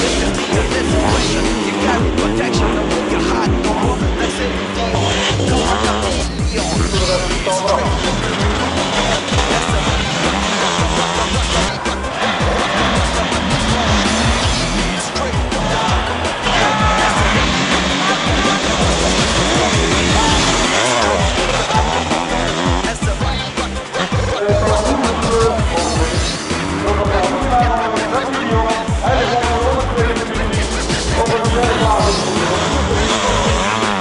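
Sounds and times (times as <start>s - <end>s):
motorcycle engines racing: 0.0s - 34.0s
music: 0.0s - 34.0s.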